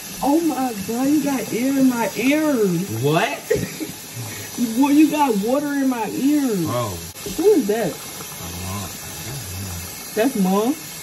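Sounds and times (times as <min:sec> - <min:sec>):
faucet running water: 0:00.0 - 0:11.0.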